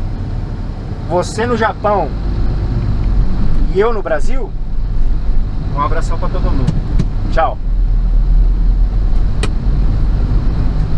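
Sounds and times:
truck engine and road rumble: 0:00.0 - 0:10.9
sharp click: 0:09.2 - 0:09.6.

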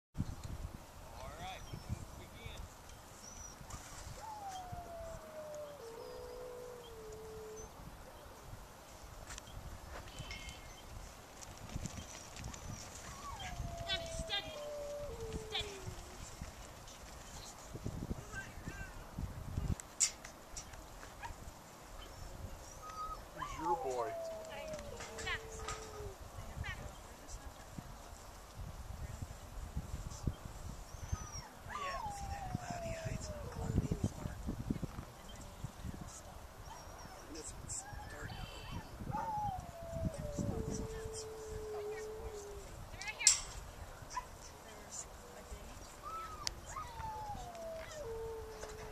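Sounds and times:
wind buffeting microphone: 0:00.2 - 0:48.9
hooves and feet on dirt: 0:08.8 - 0:18.5
dog whining: 0:13.0 - 0:16.2, 0:22.7 - 0:26.2, 0:31.0 - 0:33.9, 0:36.6 - 0:42.7, 0:46.0 - 0:48.9.

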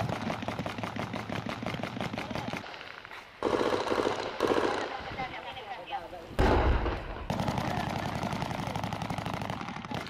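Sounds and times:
automatic gunfire: 0:03.4 - 0:05.3, 0:06.4 - 0:10.0
voices: 0:04.7 - 0:06.4.

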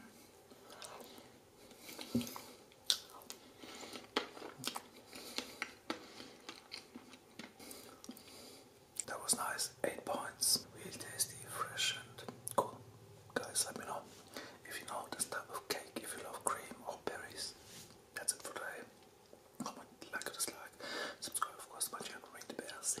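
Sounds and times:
man whispering: 0:09.0 - 0:17.6, 0:18.2 - 0:18.9, 0:19.6 - 0:23.0.

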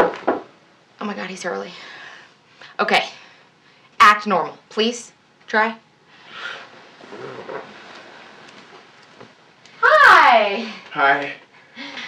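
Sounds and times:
faint rustling and shuffling: 0:06.0 - 0:09.8.

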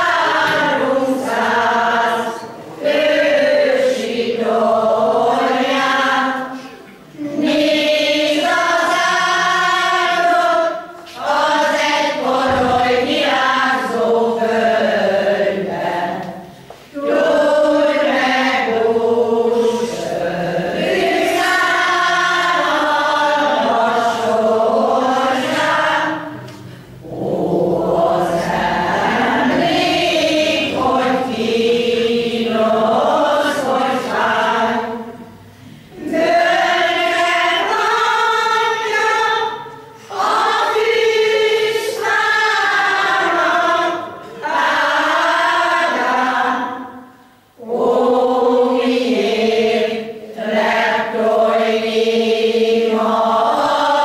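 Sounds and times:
choir singing folk song: 0:00.0 - 0:54.0.

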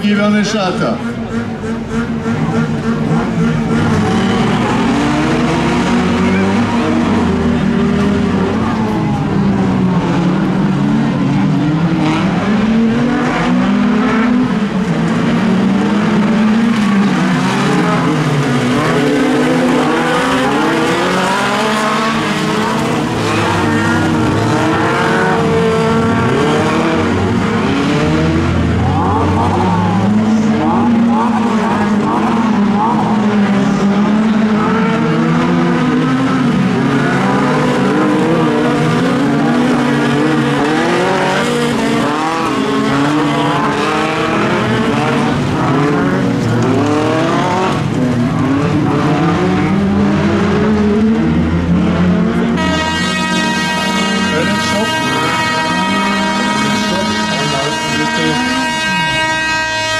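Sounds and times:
racing car engines revving: 0:00.0 - 0:59.9
car revved hard in bursts: 0:00.8 - 0:59.9.

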